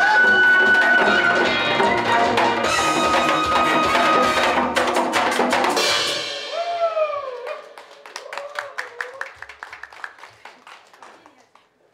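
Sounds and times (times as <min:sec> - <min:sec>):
people clapping: 0:00.0 - 0:05.8, 0:07.0 - 0:11.9
drum music: 0:00.0 - 0:08.1.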